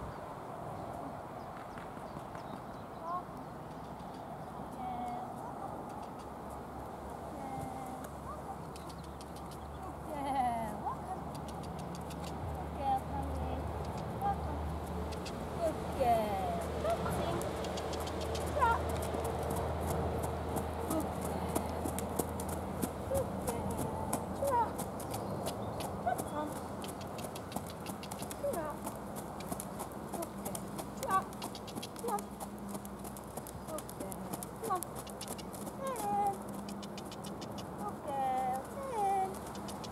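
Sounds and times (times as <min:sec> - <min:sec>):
hooves trotting on sand: 0:04.9 - 0:39.9.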